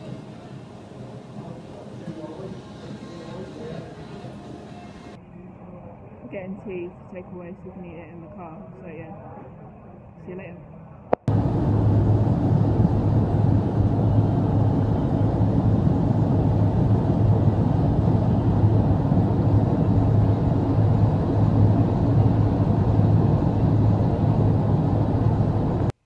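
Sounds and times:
car interior road noise: 11.3s - 26.0s.

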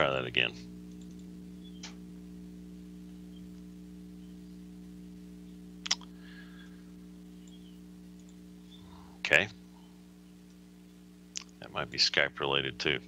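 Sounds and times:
low electrical hum: 0.0s - 13.0s.

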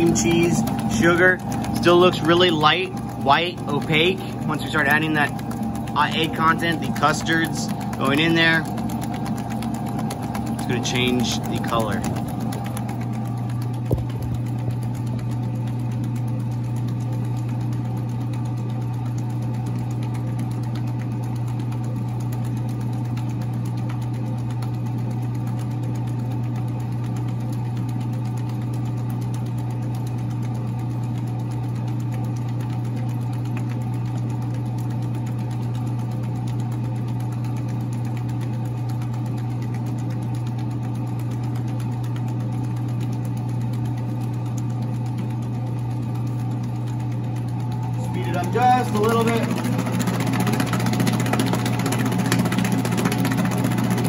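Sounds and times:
mixer motor humming: 0.0s - 54.0s.

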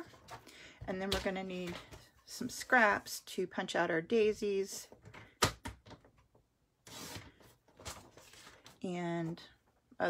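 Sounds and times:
paper rustling and sliding: 6.8s - 8.8s.

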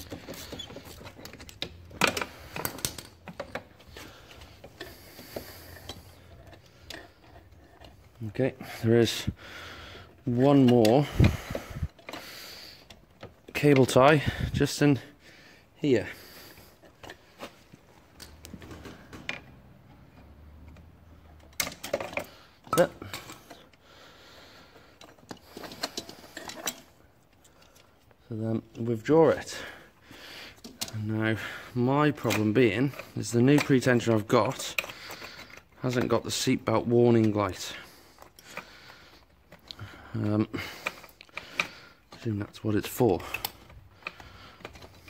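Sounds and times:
cable tie clicks and rustling: 0.0s - 9.3s, 16.4s - 23.8s, 24.7s - 45.0s.

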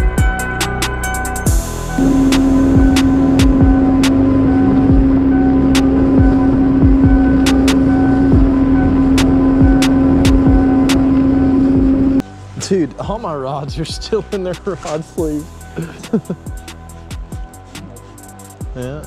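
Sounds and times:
electronic music with beat: 0.0s - 19.0s
outboard motor droning: 1.0s - 12.5s
wind on microphone: 1.6s - 12.2s.

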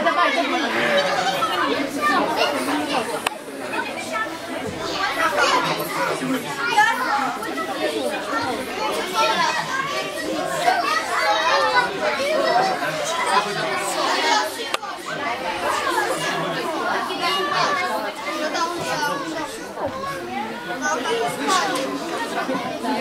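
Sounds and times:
children chattering and calling out: 0.0s - 23.0s.

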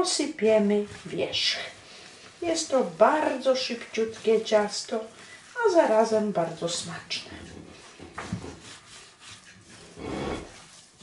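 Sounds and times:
hand rubbing dough in a bowl: 0.0s - 11.0s.

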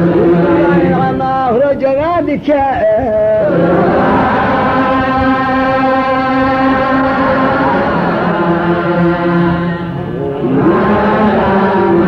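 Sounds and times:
group of voices holding a note: 0.0s - 2.4s, 3.0s - 12.0s
lead voice chanting: 0.0s - 12.0s.

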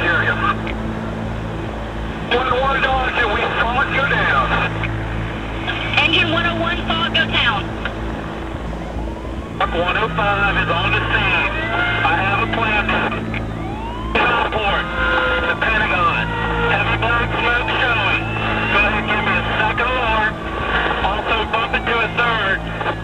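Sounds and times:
emergency radio dispatch voices: 0.0s - 0.9s, 2.2s - 23.0s
siren wailing: 0.0s - 23.0s.

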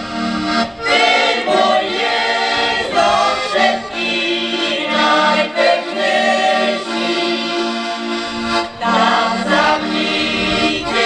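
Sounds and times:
accordion: 0.0s - 11.0s
mixed choir singing folk song: 0.1s - 11.0s.

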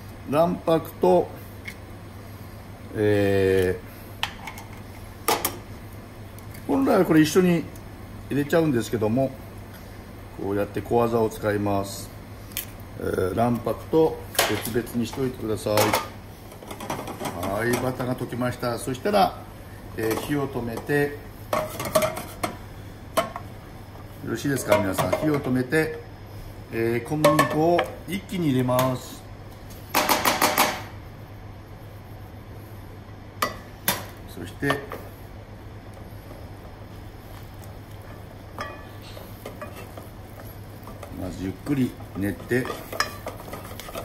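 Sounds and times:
steady low hum: 0.0s - 44.0s
metal saucepan clanking: 38.6s - 40.0s, 42.4s - 44.0s.

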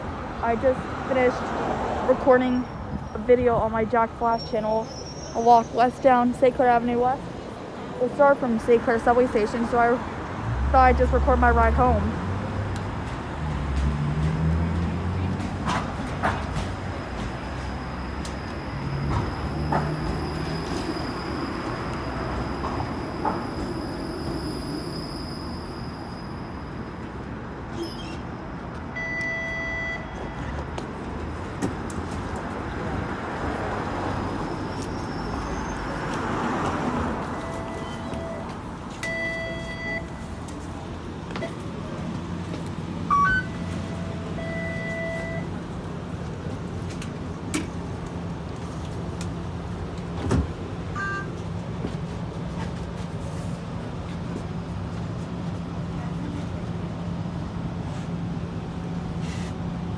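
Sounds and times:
street traffic: 0.0s - 59.9s
streetcar rumble and whine: 0.0s - 59.9s.

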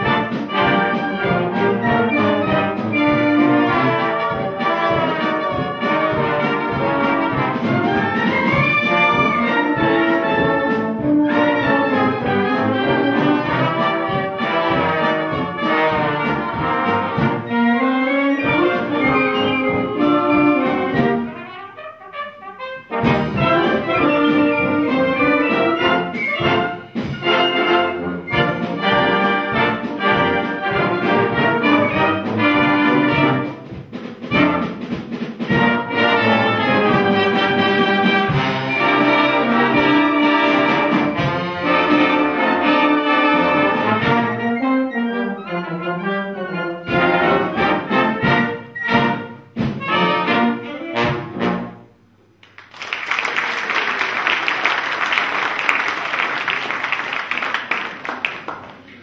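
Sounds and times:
wind band playing: 0.0s - 58.6s
audience applauding: 52.4s - 59.0s.

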